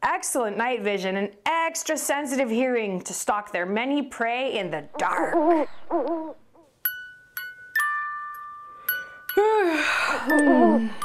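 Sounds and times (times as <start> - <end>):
owl hooting: 4.8 - 6.7
bell-like glockenspiel chimes: 6.8 - 11.0.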